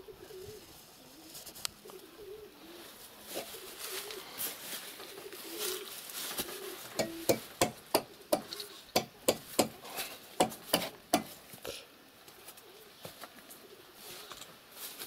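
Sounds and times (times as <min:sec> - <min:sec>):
pigeons cooing: 0:00.0 - 0:14.4
sharp knocks: 0:07.0 - 0:09.8, 0:10.4 - 0:11.3.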